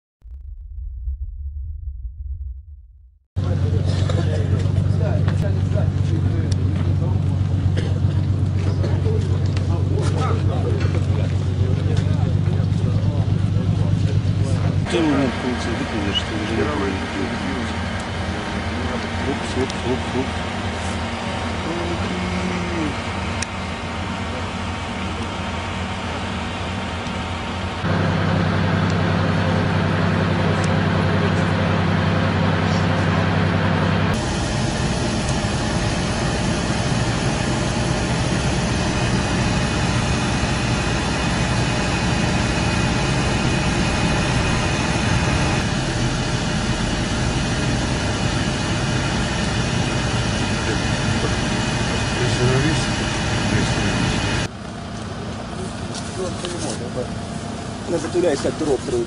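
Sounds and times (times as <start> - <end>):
loud steady engine hum: 3.4 - 59.0
vehicle engines running: 3.4 - 59.0.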